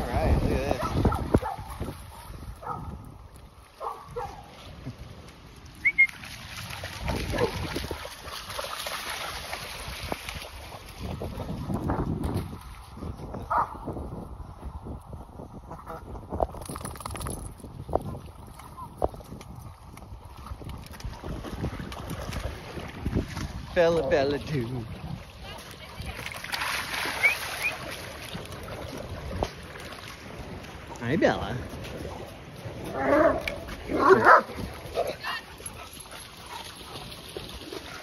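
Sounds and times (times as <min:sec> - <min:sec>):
wind buffeting microphone: 0:00.0 - 0:05.2, 0:06.7 - 0:08.6, 0:09.6 - 0:27.1, 0:28.1 - 0:37.0
dogs splashing in water: 0:00.0 - 0:13.7, 0:16.4 - 0:38.0
dog barking: 0:00.8 - 0:03.0, 0:03.8 - 0:04.4, 0:13.5 - 0:13.8, 0:33.1 - 0:34.5.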